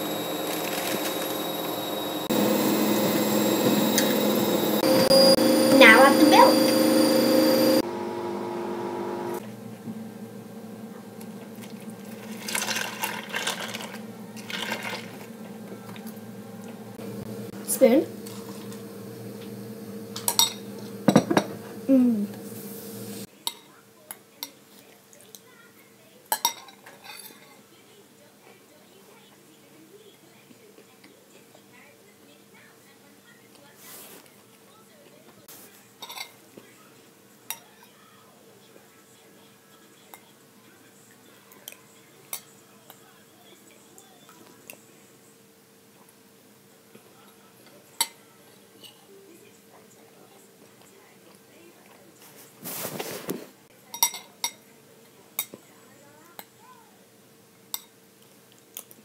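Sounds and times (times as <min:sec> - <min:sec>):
spoon clinking on ceramic bowl: 0:53.9 - 0:54.6.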